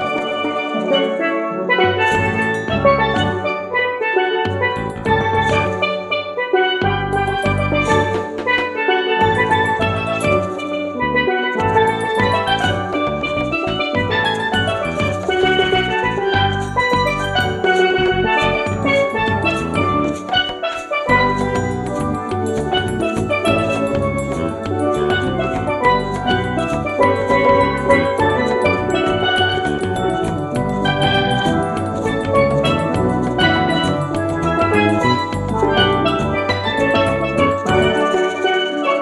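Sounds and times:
bright melody: 0:00.0 - 0:39.0
carousel band organ music: 0:00.0 - 0:39.0
pulsing bass beat: 0:04.4 - 0:05.9, 0:06.8 - 0:20.5, 0:21.1 - 0:38.1.

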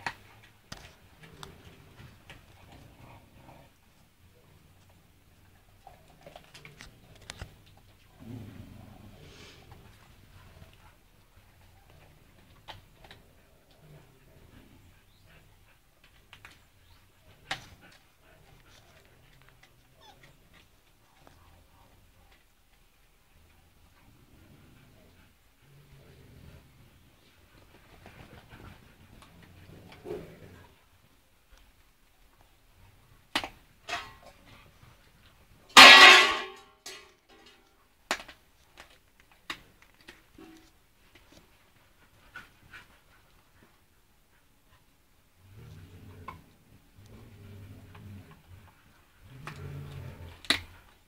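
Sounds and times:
dog and puppies: 0:00.0 - 0:36.0, 0:37.8 - 0:51.0.

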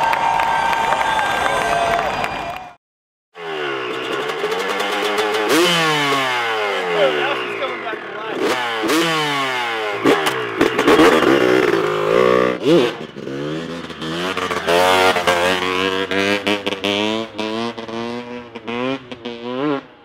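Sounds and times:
motocross bike engine revving: 0:03.4 - 0:20.0.

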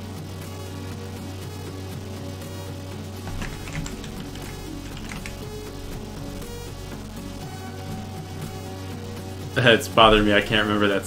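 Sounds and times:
background music: 0:00.0 - 0:11.0
computer keyboard typing: 0:03.3 - 0:05.5.

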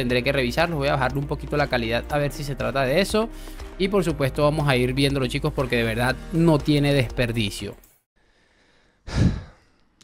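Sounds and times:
man sighing: 0:09.1 - 0:09.8.

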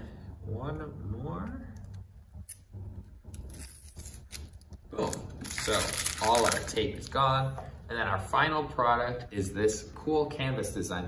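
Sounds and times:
tape peeling off canvas: 0:02.4 - 0:06.8.

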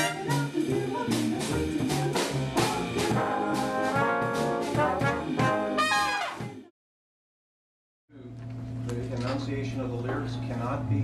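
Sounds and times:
trumpets: 0:00.0 - 0:00.6, 0:03.1 - 0:06.6
steady drum beat: 0:00.0 - 0:06.7
swing big band playing: 0:00.0 - 0:06.7.

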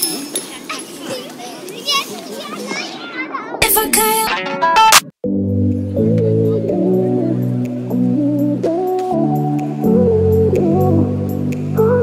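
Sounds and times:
children chattering and squealing: 0:00.0 - 0:04.4.

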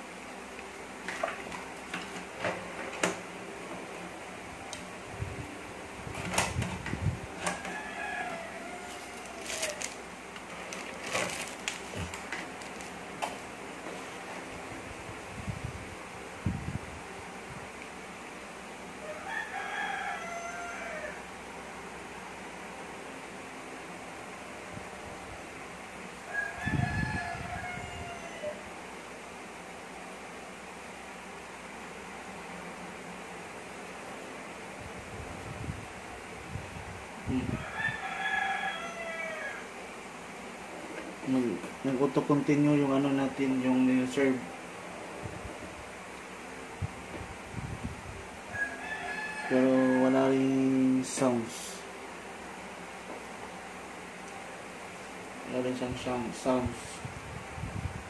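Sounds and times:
steady low hum: 0:00.0 - 0:19.6, 0:20.2 - 0:38.2, 0:39.1 - 0:48.8, 0:49.5 - 0:58.0
rooster crowing: 0:07.3 - 0:10.0, 0:19.0 - 0:21.4, 0:26.2 - 0:28.8, 0:37.3 - 0:40.0, 0:48.4 - 0:51.5.

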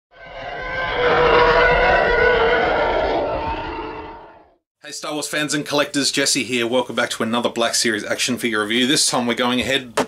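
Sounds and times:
loud noisy rushing sound: 0:00.1 - 0:04.6
steady tones: 0:00.1 - 0:04.6.

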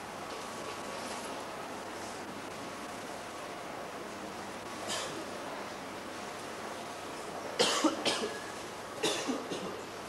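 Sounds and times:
steady background hiss: 0:00.0 - 0:10.0
person coughing: 0:07.6 - 0:08.4, 0:09.0 - 0:09.8.

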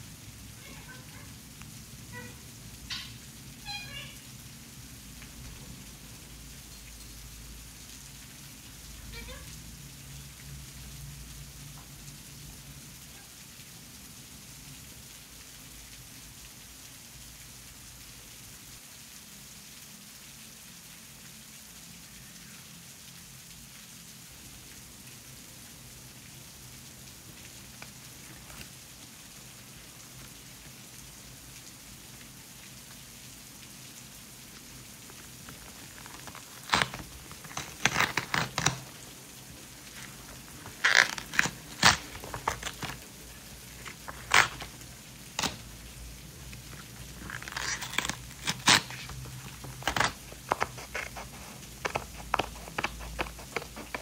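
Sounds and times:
faint steady rain: 0:00.0 - 0:54.0.

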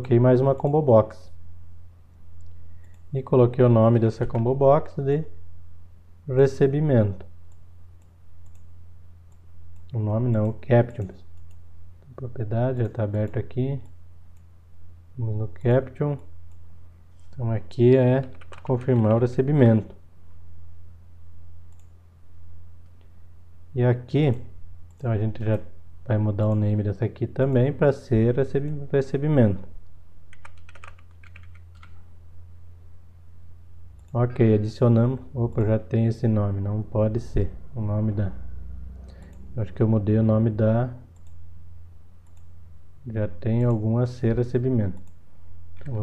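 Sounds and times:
steady low hum: 0:00.0 - 0:46.0
computer mouse clicks: 0:02.4 - 0:03.1, 0:07.5 - 0:08.7, 0:11.3 - 0:11.6, 0:21.7 - 0:22.0, 0:30.3 - 0:32.0, 0:41.2 - 0:41.4, 0:42.2 - 0:42.5, 0:45.0 - 0:45.2.

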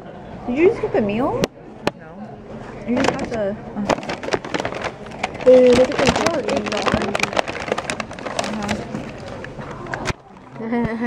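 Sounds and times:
sharp clicks and clatter: 0:03.0 - 0:10.2.

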